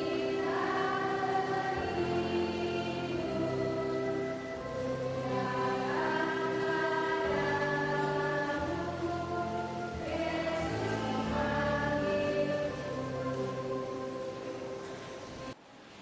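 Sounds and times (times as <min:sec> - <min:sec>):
children's choir singing a hymn: 0:00.0 - 0:15.6.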